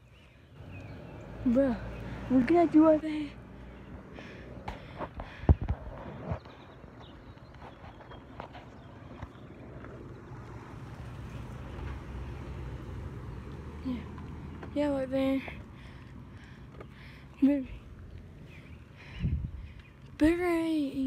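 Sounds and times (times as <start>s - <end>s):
steady low rumble: 15.4s - 20.3s.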